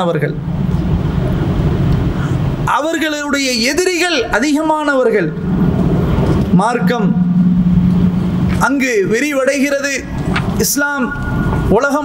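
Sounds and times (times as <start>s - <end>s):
steady low hum: 0.3s - 10.6s
man's voice: 6.5s - 7.2s.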